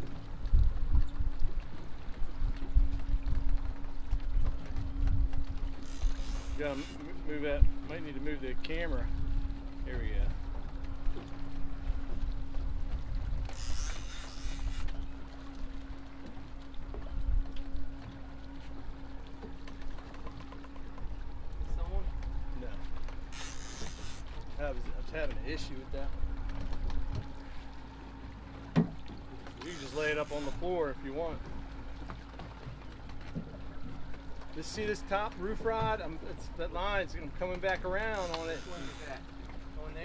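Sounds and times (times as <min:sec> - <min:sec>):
outboard engines humming: 0:00.0 - 0:40.0
wind and water rumble: 0:00.0 - 0:40.0.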